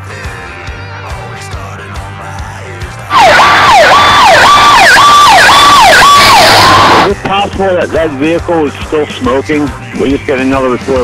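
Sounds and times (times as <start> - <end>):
electronic siren yelping: 3.1 - 7.1.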